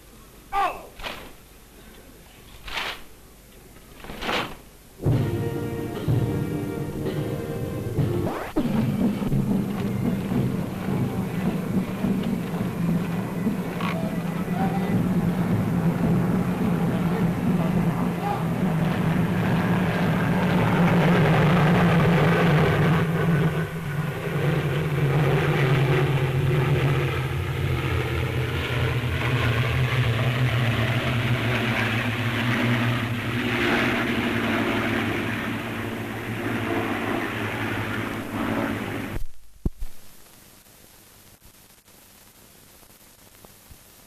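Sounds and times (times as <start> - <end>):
aircraft engines droning overhead: 4.9 - 39.2.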